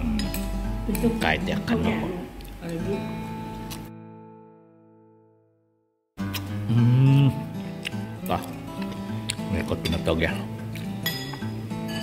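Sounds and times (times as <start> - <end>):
background music with held notes: 6.2 - 12.0
metal fork clinking on plate: 11.0 - 12.0.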